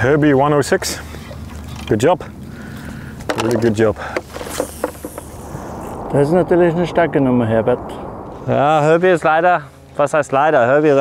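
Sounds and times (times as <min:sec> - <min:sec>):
water noise: 0:00.0 - 0:11.0
wind: 0:00.0 - 0:11.0
high hiss: 0:04.0 - 0:10.3.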